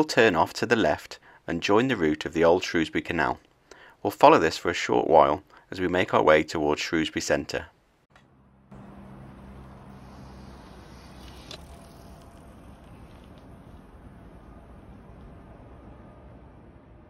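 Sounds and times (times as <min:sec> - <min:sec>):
low hum: 0:08.1 - 0:17.0
bicycle rolling past on tarmac: 0:08.3 - 0:17.0.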